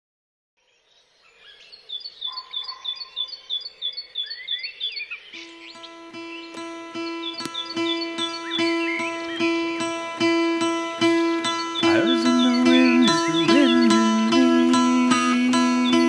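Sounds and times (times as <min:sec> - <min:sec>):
bird calls: 0:00.6 - 0:16.0
bird repeating short high chirp: 0:01.5 - 0:16.0
held note with plucked strings: 0:05.4 - 0:16.0.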